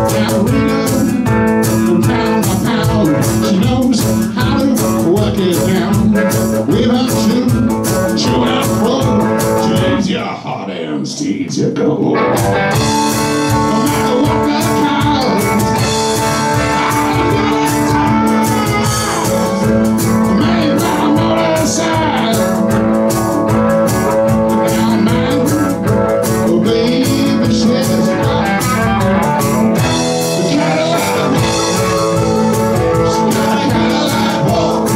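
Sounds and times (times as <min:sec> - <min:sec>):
electric guitars: 0:00.0 - 0:10.5, 0:11.8 - 0:34.9
drums: 0:00.0 - 0:11.2, 0:11.9 - 0:34.9
man singing: 0:00.0 - 0:34.9
amplified harmonica: 0:12.4 - 0:34.9.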